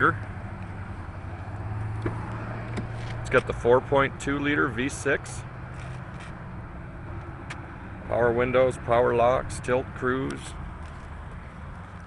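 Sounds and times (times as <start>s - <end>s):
motor vehicle humming: 0.0s - 12.0s.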